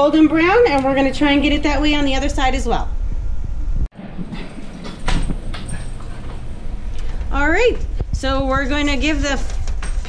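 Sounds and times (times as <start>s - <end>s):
low rumble: 1.1s - 4.5s.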